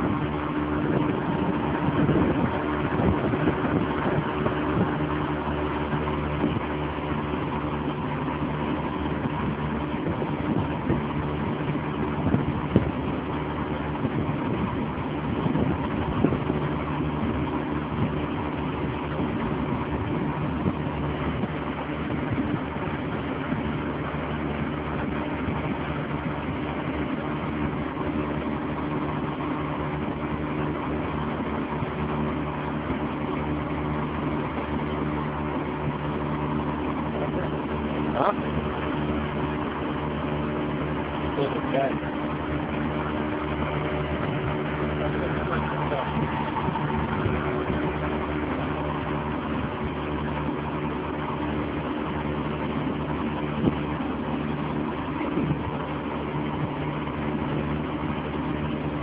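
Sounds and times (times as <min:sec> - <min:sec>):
boat engine humming: 0:00.0 - 0:59.0.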